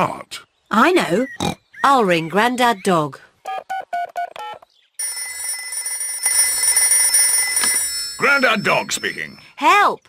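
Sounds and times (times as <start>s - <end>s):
phone keypad beeps: 3.7s - 9.5s
electronic phone ringing: 3.7s - 9.7s.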